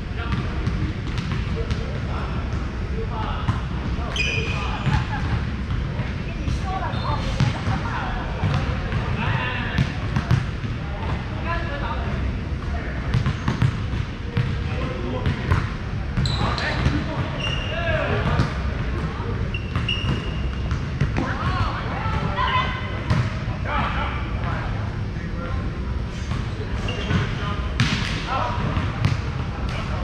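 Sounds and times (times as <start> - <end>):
players talking and calling: 0.0 - 30.0
short high squeaks: 4.1 - 4.8, 19.5 - 20.6, 26.8 - 27.1.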